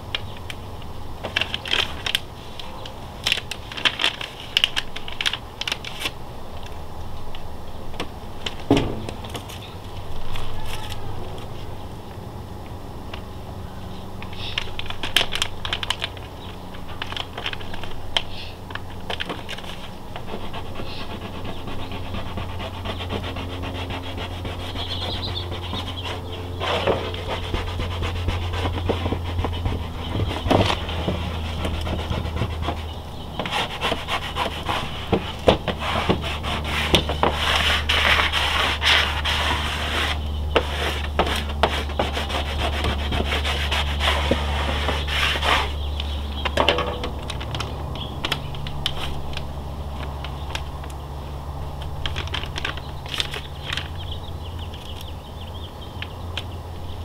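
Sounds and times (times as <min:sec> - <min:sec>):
squeegee scraping over vinyl: 0:14.4 - 0:46.0.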